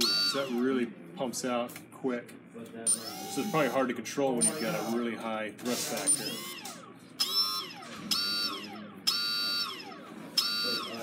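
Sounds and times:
thruster motors whining: 2.9 - 5.0, 5.6 - 11.0.

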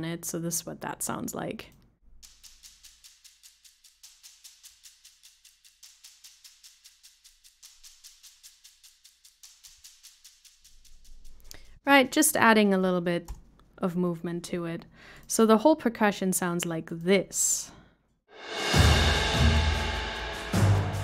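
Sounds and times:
filtered shaker ticks with delay: 2.2 - 12.2.

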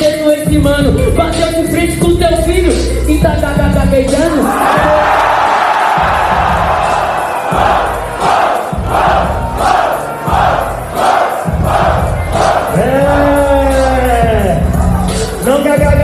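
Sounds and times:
hip-hop beat: 0.0 - 16.0
crowd shouting and chanting: 4.4 - 15.4.

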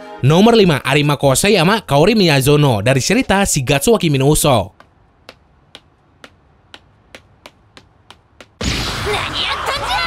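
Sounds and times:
faint clicking footsteps: 3.1 - 8.6.

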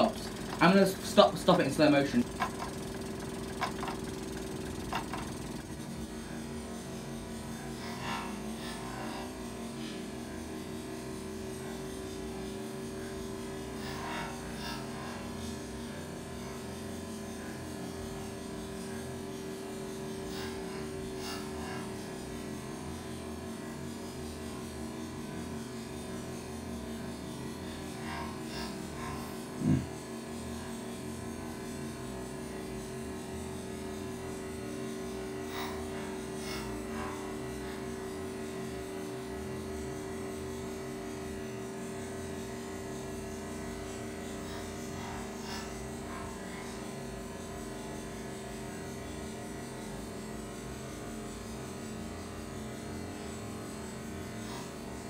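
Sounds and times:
model steam engines running: 0.0 - 7.5.

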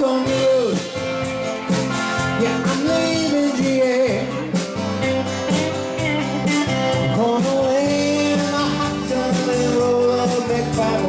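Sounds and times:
man singing: 0.0 - 1.2, 2.2 - 4.8, 6.5 - 11.0
acoustic and electric guitars: 0.0 - 11.0
drums: 0.0 - 11.0.

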